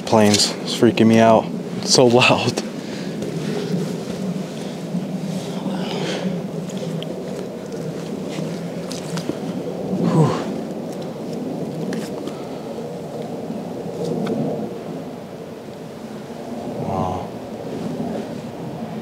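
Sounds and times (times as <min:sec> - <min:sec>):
airplane passing overhead: 0:00.0 - 0:19.0.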